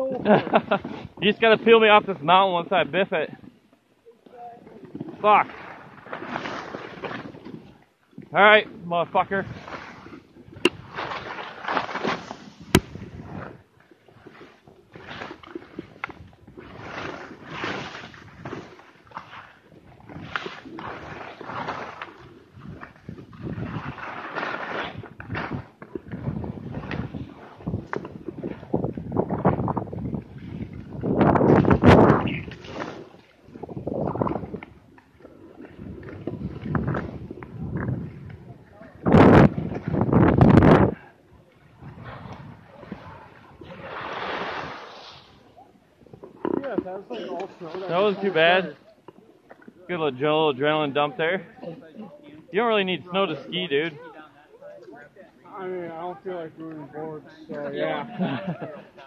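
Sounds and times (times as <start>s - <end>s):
skis scraping over snow: 43.9s - 45.5s.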